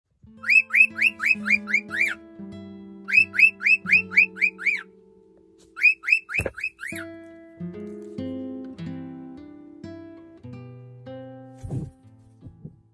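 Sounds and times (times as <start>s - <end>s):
guitar music: 0.2s - 12.9s
cockatiel chirping: 0.4s - 2.2s, 3.1s - 4.9s, 5.7s - 7.1s.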